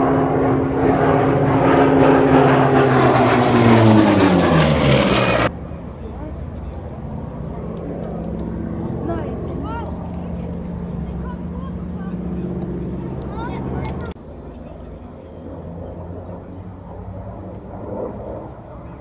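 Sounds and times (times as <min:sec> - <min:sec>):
propeller plane engine running: 0:00.0 - 0:19.0.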